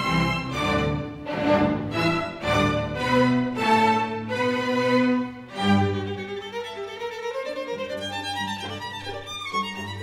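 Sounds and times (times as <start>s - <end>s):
low cello and double bass notes: 0.0s - 10.0s
solo violin: 0.0s - 10.0s
string orchestra: 0.0s - 10.0s.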